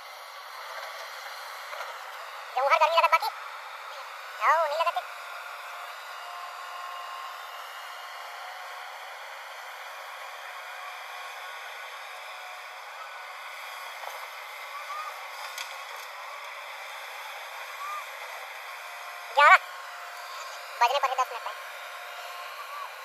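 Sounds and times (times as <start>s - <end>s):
excavator hissing machine noise: 0.0s - 23.0s.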